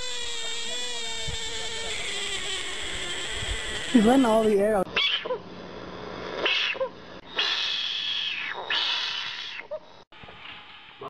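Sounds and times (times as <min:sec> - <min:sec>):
frogs screaming: 0:00.0 - 0:05.4, 0:06.2 - 0:09.9.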